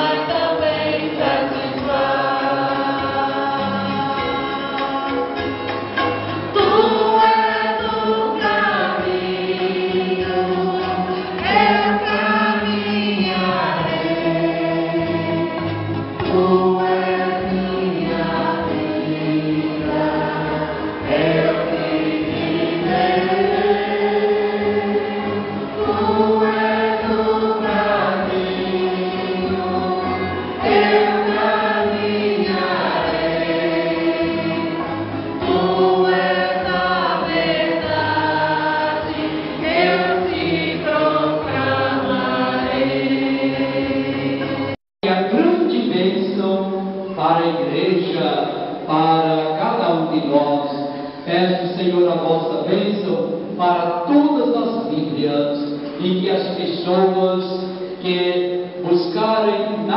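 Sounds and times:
group singing a hymn: 0.0s - 46.0s.

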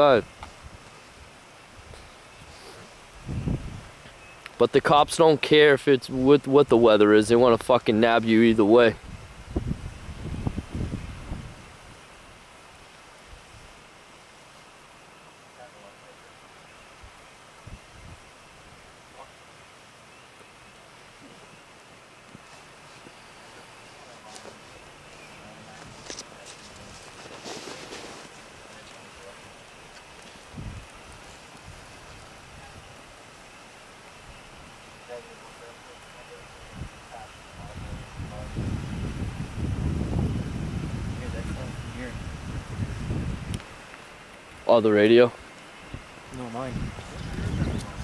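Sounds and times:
faint steady hiss: 0.0s - 48.0s
rustle: 0.0s - 48.0s
wind buffeting microphone: 3.1s - 4.0s, 8.9s - 12.0s, 17.0s - 18.3s, 30.4s - 33.0s, 36.6s - 43.9s, 45.8s - 48.0s.

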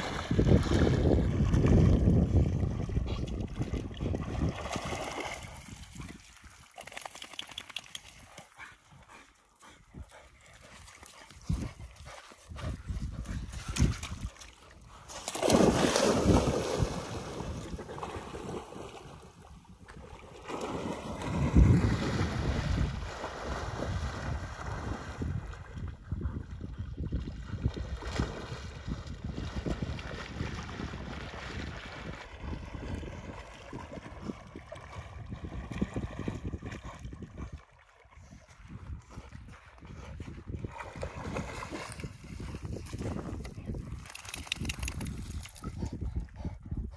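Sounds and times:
dog splashing through water: 0.0s - 8.6s, 10.4s - 19.3s, 20.0s - 25.6s, 40.6s - 45.8s.

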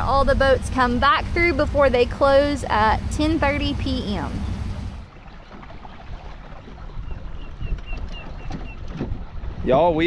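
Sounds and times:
water lapping: 0.0s - 10.0s
wind: 0.0s - 10.0s.

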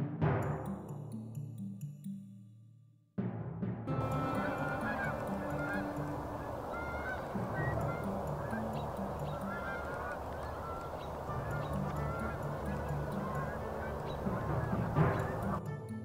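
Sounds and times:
geese honking in flight: 3.9s - 15.7s.

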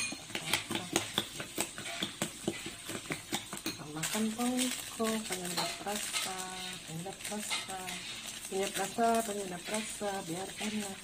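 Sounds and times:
spoon beating eggs in bowl: 0.0s - 11.0s.

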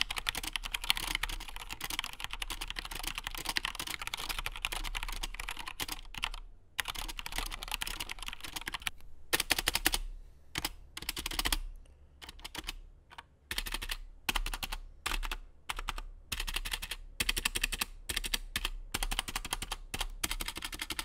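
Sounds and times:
mechanical keyboard typing: 0.0s - 21.0s.

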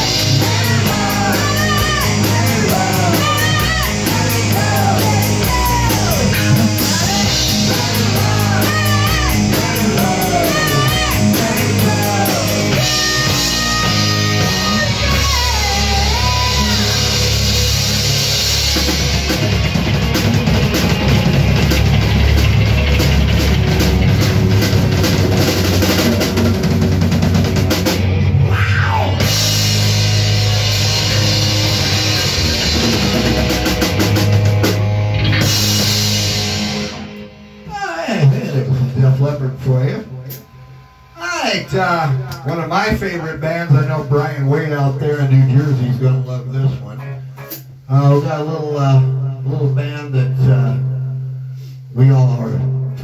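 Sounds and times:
bending electric guitar line: 0.0s - 43.4s
rock band playing: 0.0s - 48.3s.

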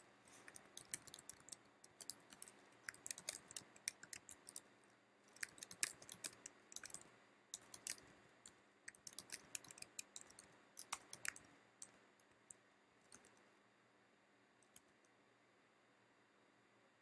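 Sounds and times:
computer keyboard typing: 0.0s - 12.0s, 13.0s - 13.4s.

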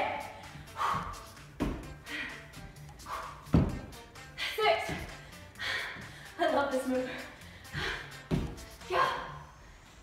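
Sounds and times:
background music: 0.0s - 10.0s
feet thudding on wooden floor: 0.8s - 2.0s, 3.1s - 4.0s, 4.8s - 5.2s, 7.7s - 8.8s.

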